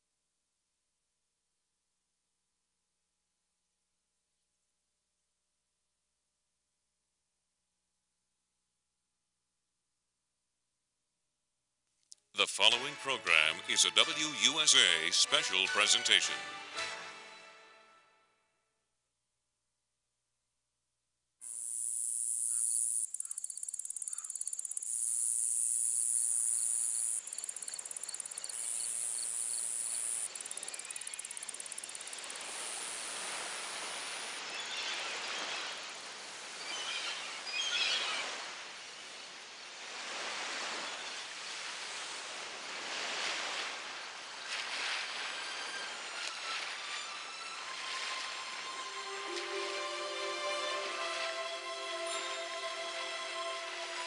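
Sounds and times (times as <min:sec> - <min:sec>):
small waves washing onto shore: 0:29.6 - 0:54.0.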